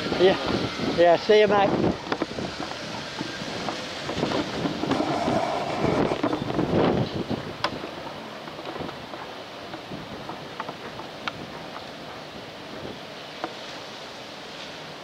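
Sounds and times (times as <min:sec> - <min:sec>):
wind on microphone: 0:00.0 - 0:13.1
traffic noise: 0:00.0 - 0:15.0.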